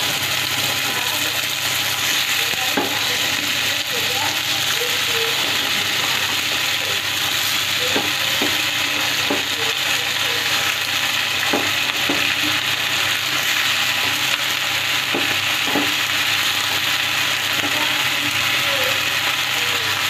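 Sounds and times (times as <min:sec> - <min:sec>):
vegetables sizzling in hot oil: 0:00.0 - 0:20.0.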